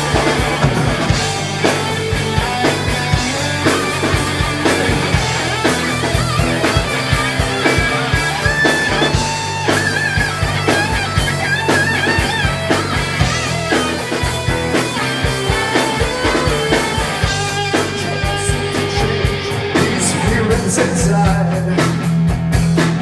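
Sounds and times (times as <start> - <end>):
electric guitar lead solo: 0.0 - 20.7
bass guitar: 0.0 - 23.0
steady drum beat: 0.0 - 23.0.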